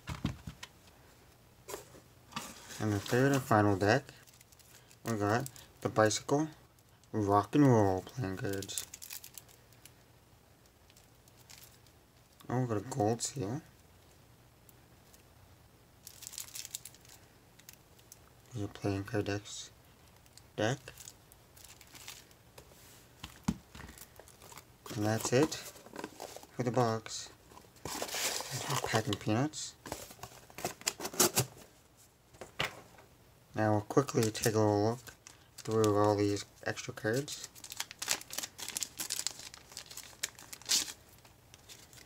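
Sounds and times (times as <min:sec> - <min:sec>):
plastic bag crinkling: 0:08.4 - 0:09.6, 0:16.0 - 0:18.1, 0:20.1 - 0:22.4, 0:23.7 - 0:26.6, 0:27.4 - 0:29.2, 0:37.1 - 0:42.0.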